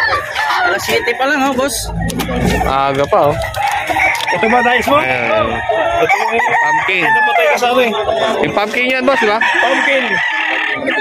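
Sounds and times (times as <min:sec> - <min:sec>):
voices: 0:00.0 - 0:11.0
rooster crowing: 0:03.4 - 0:07.6
other fowl: 0:09.1 - 0:11.0.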